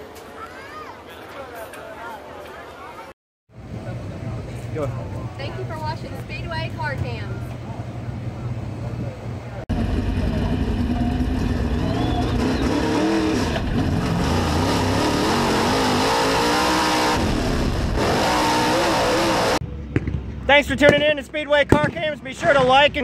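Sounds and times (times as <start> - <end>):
race car engine revving: 9.7 - 19.6.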